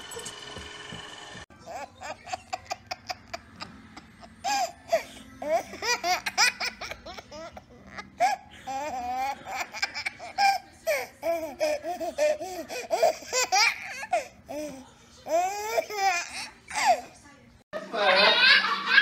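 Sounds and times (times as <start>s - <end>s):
baby laughing: 1.6s - 17.1s.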